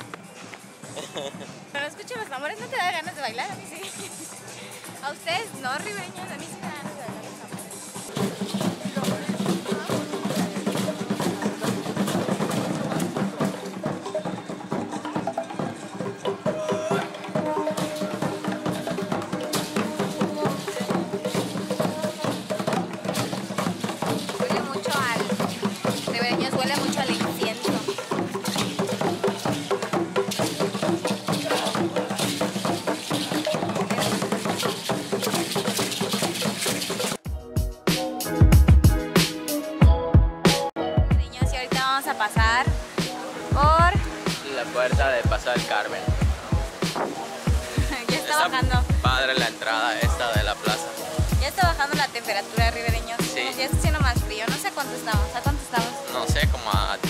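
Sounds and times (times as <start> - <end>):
fast drum beats: 1.0 - 57.0.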